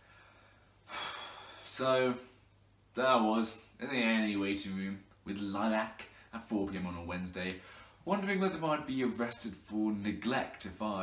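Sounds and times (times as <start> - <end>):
man breathing: 0.0 - 1.8, 7.6 - 8.0
man speaking: 1.6 - 11.0.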